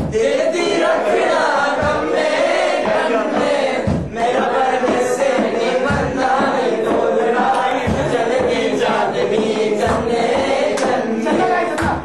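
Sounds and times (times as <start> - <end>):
male voices chanting: 0.0 - 12.0.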